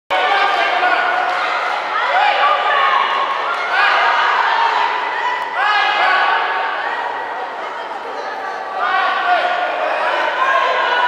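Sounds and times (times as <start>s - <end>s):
voices shouting: 0.2s - 11.0s.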